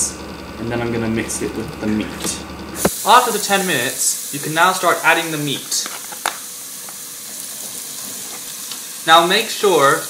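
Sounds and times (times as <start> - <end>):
vegetables sizzling in oil: 2.8 - 10.0.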